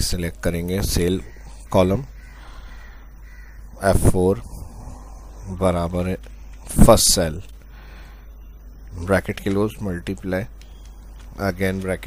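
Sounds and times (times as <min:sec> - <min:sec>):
man speaking: 0:00.0 - 0:02.2, 0:03.8 - 0:04.7, 0:05.4 - 0:07.6, 0:08.9 - 0:10.5, 0:11.4 - 0:12.0
low steady background hum: 0:00.0 - 0:12.0.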